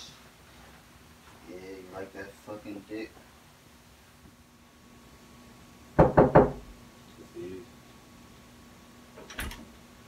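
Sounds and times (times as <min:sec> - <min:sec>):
knocks on wooden door: 0:06.0 - 0:06.7.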